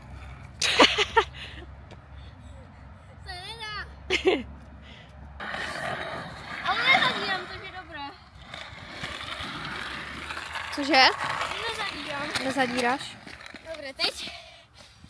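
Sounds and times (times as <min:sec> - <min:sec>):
skateboard wheels rolling on asphalt: 0:00.0 - 0:02.1, 0:04.6 - 0:15.0.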